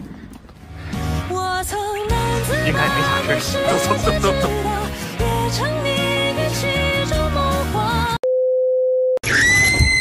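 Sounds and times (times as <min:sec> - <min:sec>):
high-pitched scream: 0:09.2 - 0:10.0.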